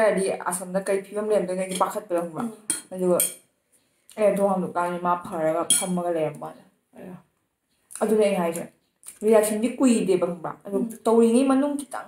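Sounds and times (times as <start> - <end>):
woman talking: 0.0 - 3.4, 4.1 - 7.3, 8.0 - 12.0
metal spoon clinking on plate: 2.7 - 3.4, 5.7 - 6.0.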